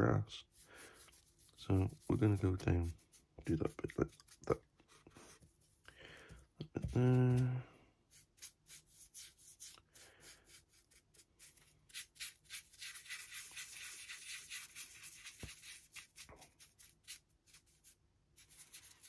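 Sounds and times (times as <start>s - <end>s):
paintbrush scrubbing on plastic: 0.0s - 5.8s, 6.7s - 19.0s.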